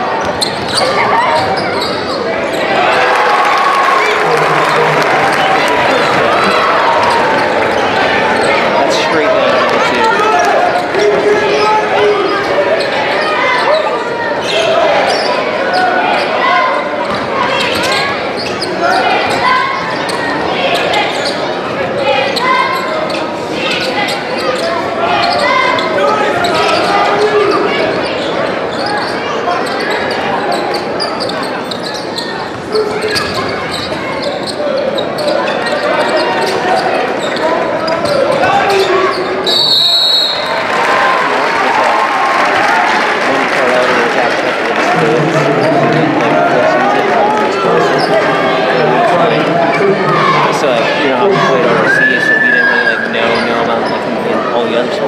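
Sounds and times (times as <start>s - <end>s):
echoing crowd chatter: 0.0s - 55.0s.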